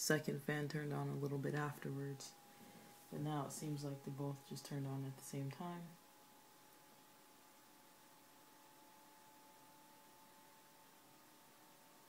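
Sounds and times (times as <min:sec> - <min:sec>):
laptop cooling fans whirring: 0:00.0 - 0:12.0.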